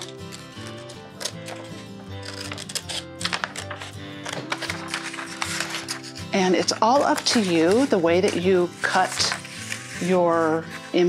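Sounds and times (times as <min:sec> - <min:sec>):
background music: 0:00.0 - 0:11.0
scissors snipping paper: 0:00.0 - 0:11.0.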